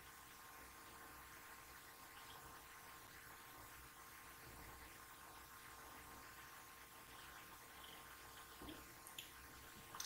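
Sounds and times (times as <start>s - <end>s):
faint hum: 0.0s - 10.0s
faint recording hiss: 0.0s - 10.0s.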